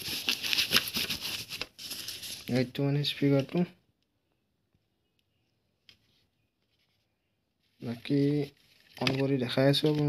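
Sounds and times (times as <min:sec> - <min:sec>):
man speaking: 0:02.5 - 0:03.8, 0:07.8 - 0:10.0
handling plastic speaker: 0:07.8 - 0:10.0.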